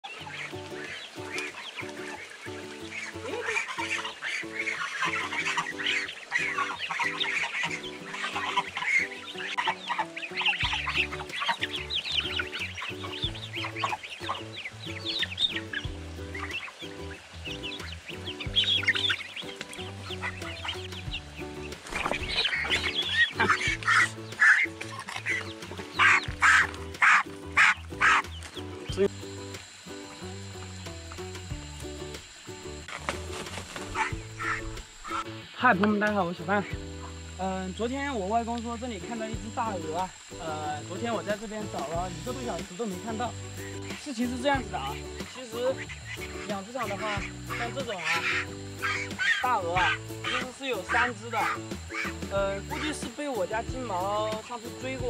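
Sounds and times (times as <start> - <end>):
geese and chicks calling: 0.0 - 28.9, 32.8 - 37.4, 38.4 - 55.0
background music: 0.0 - 55.0.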